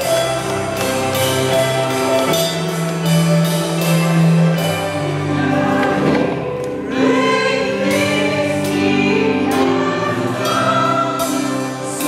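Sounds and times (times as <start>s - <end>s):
choir singing over a band: 3.8s - 12.0s.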